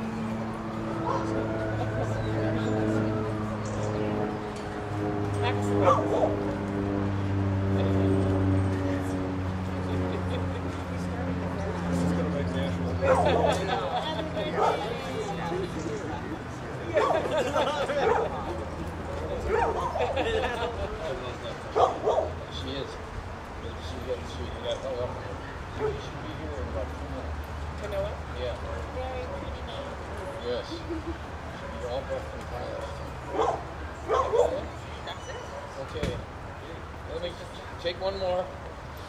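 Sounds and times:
large dog barking: 5.8s - 6.4s, 13.0s - 13.6s, 18.0s - 18.4s, 19.5s - 20.1s, 21.7s - 22.4s, 33.3s - 34.6s.

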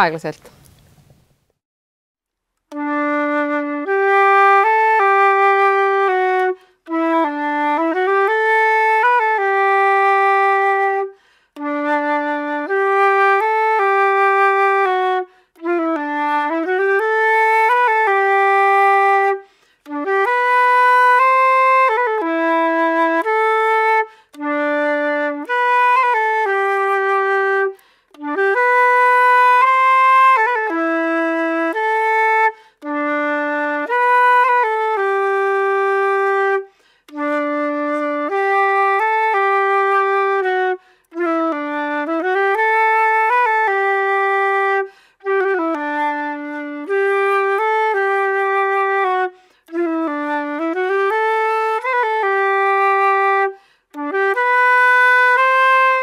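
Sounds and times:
solo flute waltz: 2.6s - 56.0s.

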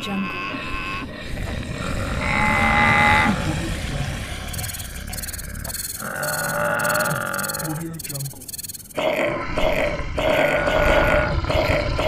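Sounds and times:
low rumbling of moving animals: 0.0s - 8.2s, 9.0s - 12.0s
high pulsing chatter: 3.5s - 9.0s
held pitched animal calls: 4.4s - 11.7s.

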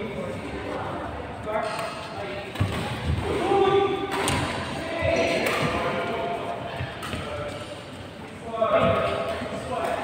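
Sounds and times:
players' voices: 0.0s - 10.0s
rackets hitting shuttlecocks: 1.7s - 6.0s.

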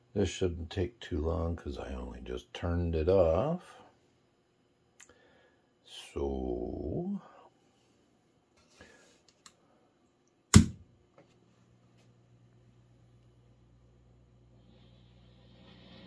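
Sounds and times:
low mains hum with hiss: 0.0s - 16.0s.

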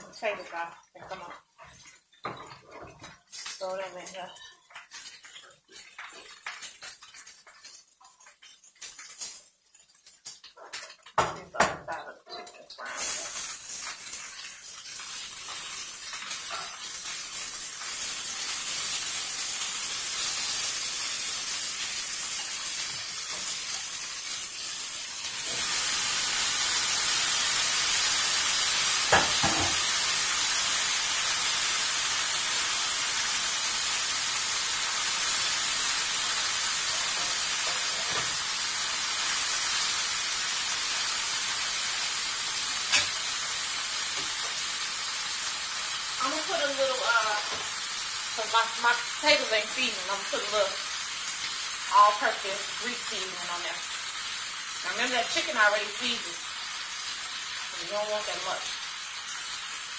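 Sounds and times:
food sizzling in a skillet: 0.0s - 59.9s.

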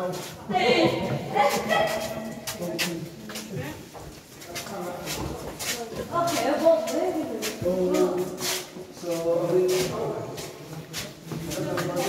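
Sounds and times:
people's voices in a cave: 0.0s - 12.0s.

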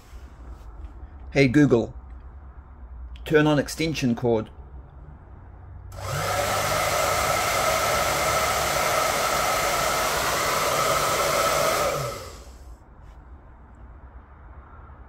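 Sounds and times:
hair dryer blowing: 5.9s - 12.6s
hair dryer motor winding down: 5.9s - 12.6s.

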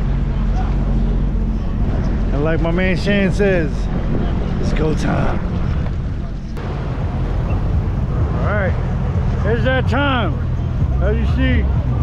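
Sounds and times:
water noise: 0.0s - 11.9s
jet ski engine rumbling: 0.0s - 12.0s
wind noise: 0.0s - 12.0s.

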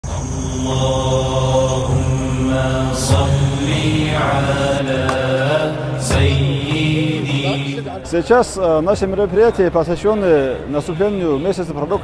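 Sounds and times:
man chanting slowly: 0.2s - 8.1s, 9.8s - 12.0s.

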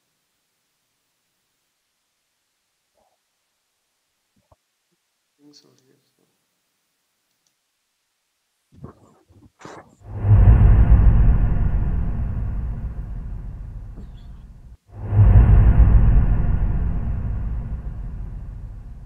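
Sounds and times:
deep rumbling hit: 10.0s - 19.0s.

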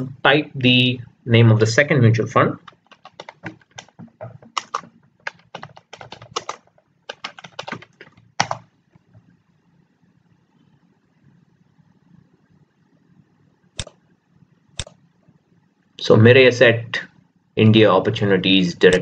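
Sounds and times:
computer keyboard typing: 2.6s - 8.7s.

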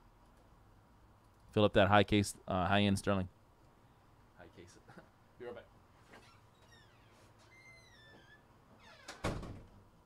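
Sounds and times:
short falling squeaks: 6.1s - 9.4s.

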